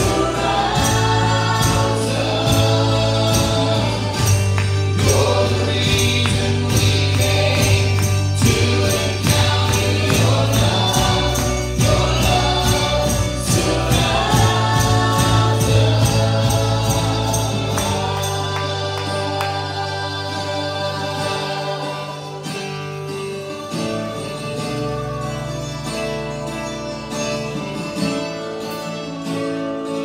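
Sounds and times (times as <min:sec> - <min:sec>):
voices singing together: 0:00.0 - 0:27.3
steady bass: 0:00.0 - 0:28.6
acoustic and electric guitars: 0:00.0 - 0:30.0.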